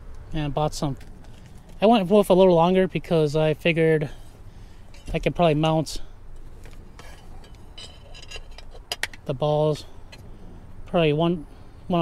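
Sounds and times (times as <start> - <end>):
metal screws clinking: 4.9 - 5.2, 6.7 - 9.3.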